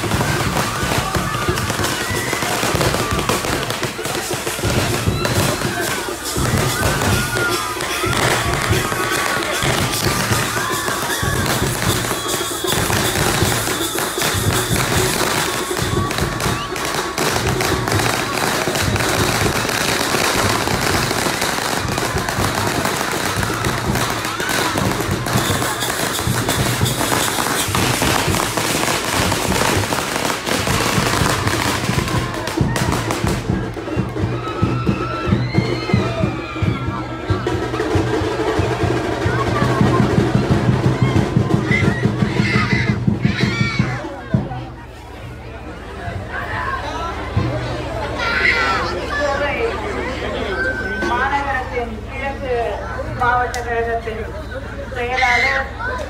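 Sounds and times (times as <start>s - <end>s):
firecrackers crackling: 0.0s - 45.2s.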